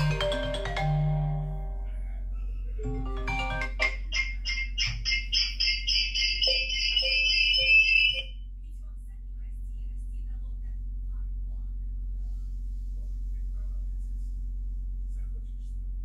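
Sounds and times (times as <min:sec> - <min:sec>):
marimba-like ringtone: 0:00.0 - 0:01.9, 0:02.8 - 0:08.3
high-pitched pulsing phone ring: 0:02.8 - 0:08.4.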